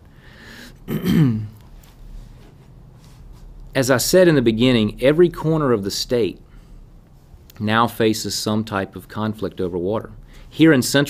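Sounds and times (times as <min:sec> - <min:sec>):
man clearing his throat: 0:00.8 - 0:01.6.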